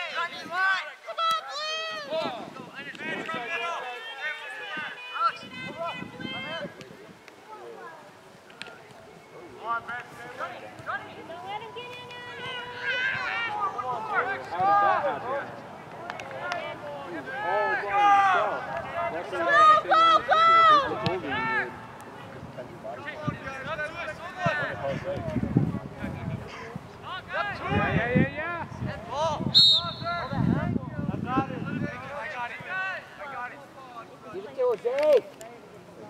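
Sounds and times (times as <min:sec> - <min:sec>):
people shouting and calling out: 0:00.0 - 0:08.0, 0:09.6 - 0:35.4.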